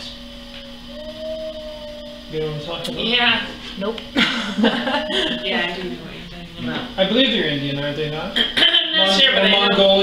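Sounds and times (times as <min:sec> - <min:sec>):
pottery wheel motor humming: 0:00.0 - 0:10.0.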